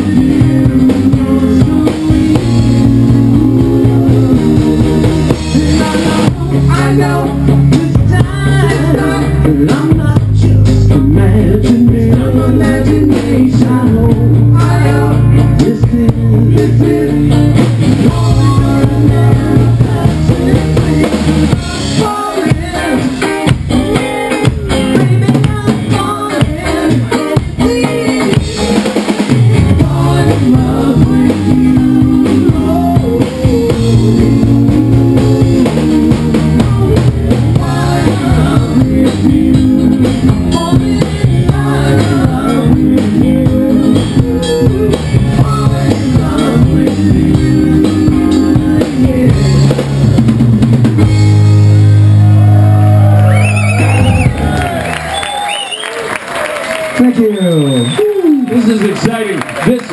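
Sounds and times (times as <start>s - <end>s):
sung lead vocal: 0.0s - 50.4s
rock band playing live: 0.0s - 59.9s.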